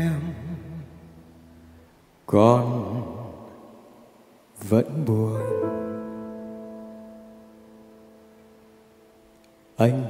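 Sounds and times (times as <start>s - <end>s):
piano chord ringing: 5.3s - 9.2s.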